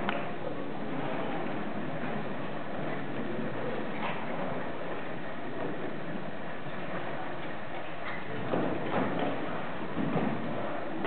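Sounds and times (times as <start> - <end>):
hall room noise: 0.0 - 11.0.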